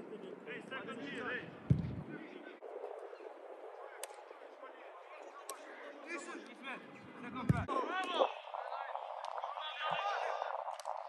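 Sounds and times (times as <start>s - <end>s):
football kick thuds: 1.7s - 2.1s, 7.5s - 7.7s.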